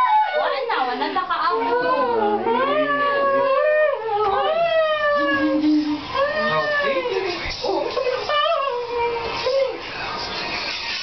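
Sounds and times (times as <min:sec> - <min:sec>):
voices wailing: 0:01.6 - 0:09.8.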